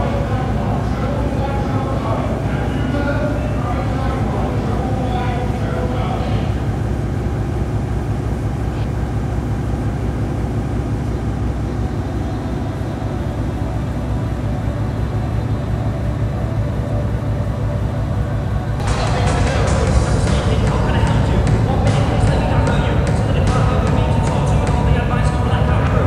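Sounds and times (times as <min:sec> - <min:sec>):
low droning rumble: 0:00.0 - 0:26.0.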